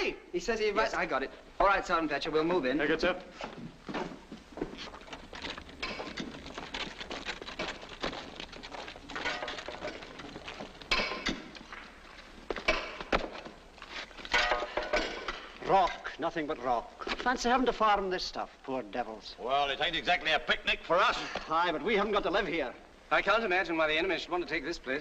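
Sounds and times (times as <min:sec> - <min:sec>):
knocks thuds and clinks of gear: 0:03.7 - 0:15.5.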